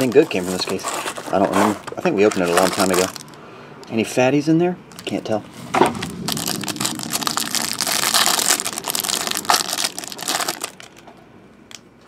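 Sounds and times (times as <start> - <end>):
plastic wrapper tearing and crinkling: 0.0 - 3.4, 5.0 - 11.8.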